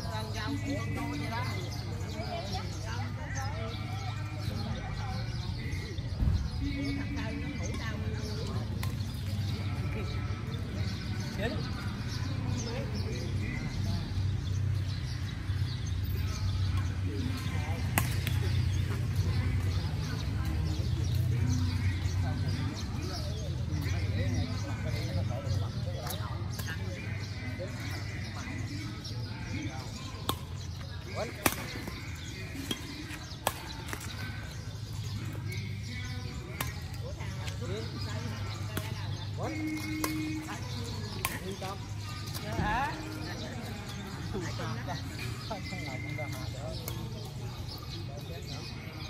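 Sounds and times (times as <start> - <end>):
racket striking shuttlecock: 32.6 - 34.1.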